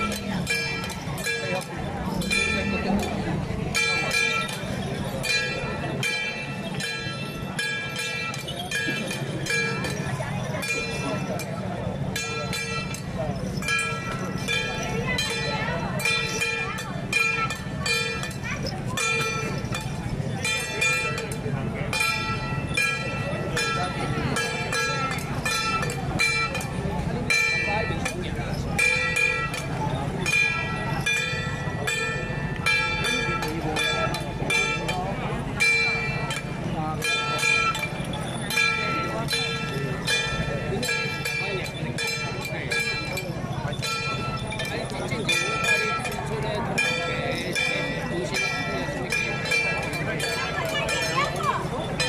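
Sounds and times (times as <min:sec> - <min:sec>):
metal percussion steady beat: 0:00.0 - 0:52.0.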